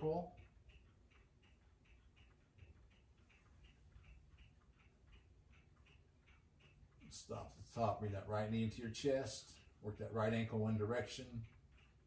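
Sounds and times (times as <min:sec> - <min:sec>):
faint even ticking: 0:00.0 - 0:12.0.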